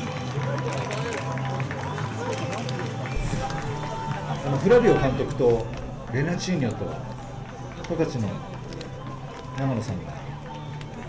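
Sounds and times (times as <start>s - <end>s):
distant voices talking: 0.0s - 11.0s.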